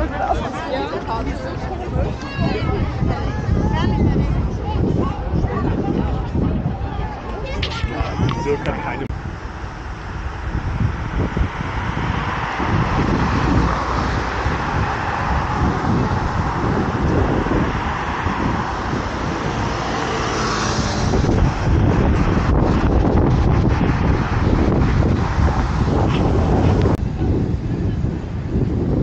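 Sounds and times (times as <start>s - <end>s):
wind buffeting microphone: 0.0s - 29.0s
cars driving past: 8.0s - 28.9s.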